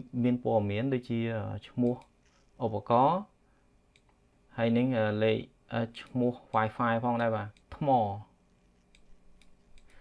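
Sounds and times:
man speaking: 0.0 - 3.4, 4.5 - 8.4
faint computer mouse click: 3.9 - 4.2.

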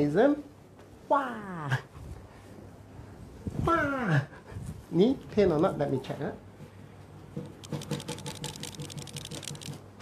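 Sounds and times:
crackly knee clicks: 7.4 - 9.9.

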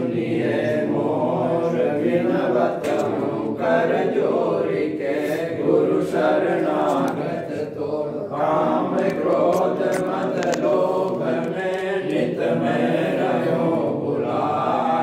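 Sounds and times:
group chanting prayer in unison: 0.0 - 15.0.

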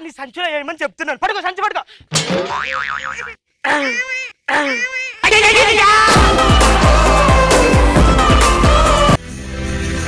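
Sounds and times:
cartoon boing sound effect: 2.4 - 3.4
person crying out: 3.6 - 6.1.

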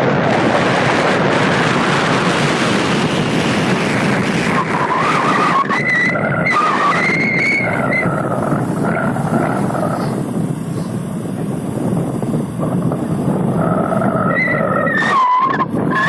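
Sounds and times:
motorcycle engine running: 0.0 - 15.0
wavering whine: 0.0 - 16.0
wind rushing over microphone: 0.0 - 16.0.

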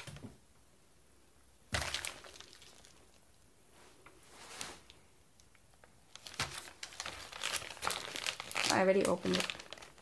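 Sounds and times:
plastic bag crinkling: 1.7 - 3.2, 6.1 - 10.0.

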